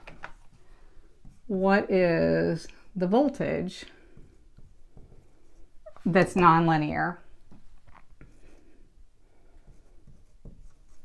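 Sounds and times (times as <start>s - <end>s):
marker writing on whiteboard: 0.4s - 1.9s, 3.4s - 6.7s, 7.9s - 11.0s.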